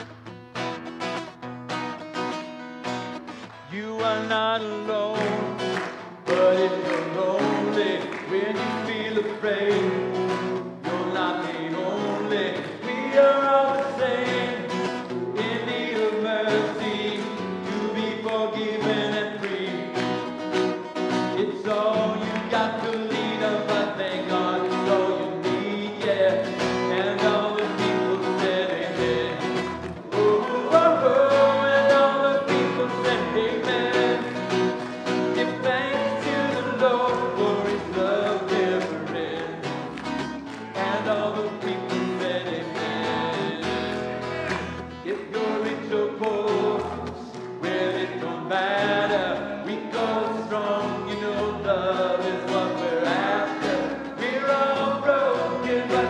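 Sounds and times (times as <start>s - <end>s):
acoustic guitar strumming: 0.0s - 56.0s
man singing: 3.6s - 56.0s.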